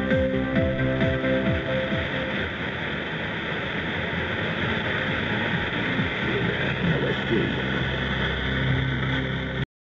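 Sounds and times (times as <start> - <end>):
radio static hiss: 0.0 - 9.7
faint radio station audio: 2.0 - 9.7.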